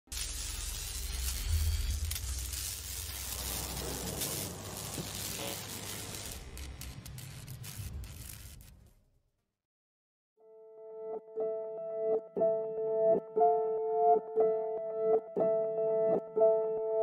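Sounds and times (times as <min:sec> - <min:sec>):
crackling sizzling noise: 0:00.1 - 0:09.0.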